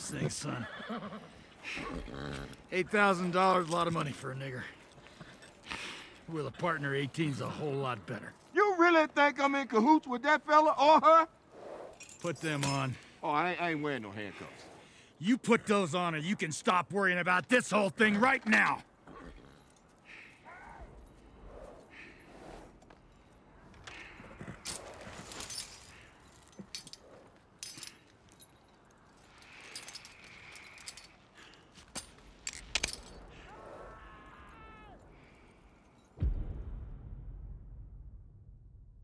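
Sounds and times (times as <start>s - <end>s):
light metal clinks and jangles: 3.1s - 8.5s, 11.9s - 13.3s, 18.1s - 21.2s, 23.0s - 33.4s
deep boom: 36.2s - 39.0s.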